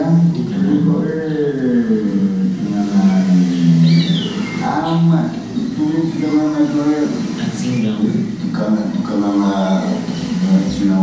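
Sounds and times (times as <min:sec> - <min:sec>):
man speaking in sing-song syllables: 0:00.0 - 0:04.0, 0:04.6 - 0:11.0.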